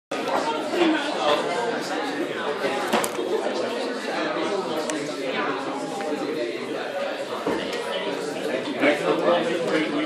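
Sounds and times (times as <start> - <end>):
chatter of many people: 0.1 - 10.0.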